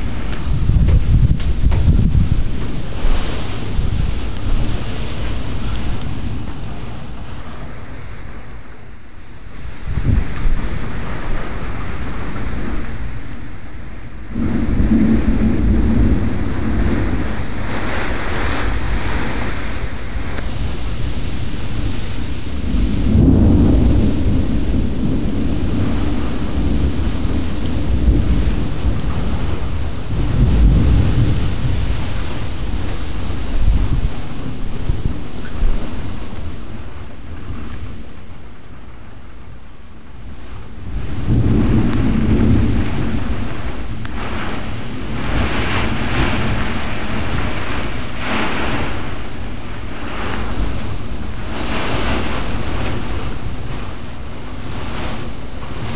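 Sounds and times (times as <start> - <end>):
heavy rain: 0.0 - 55.9
low rumbling thunder: 0.0 - 55.9.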